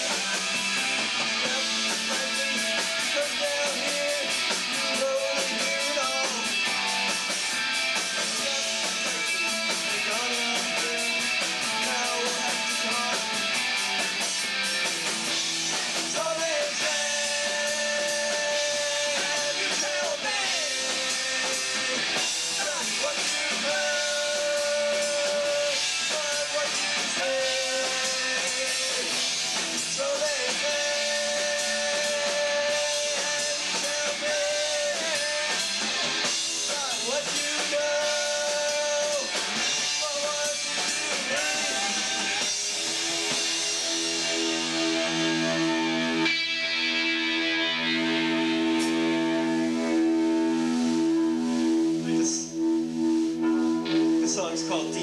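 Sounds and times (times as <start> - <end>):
bass guitar: 0.0 - 55.0
drum kit: 0.0 - 55.0
electric guitars: 0.0 - 55.0.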